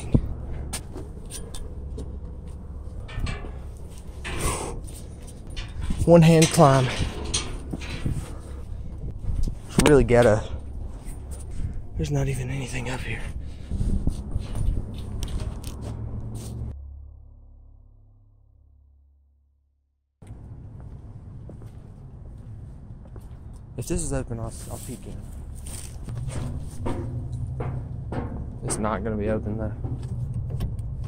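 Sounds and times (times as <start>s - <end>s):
hands clicking on metal rungs: 0.0s - 10.4s.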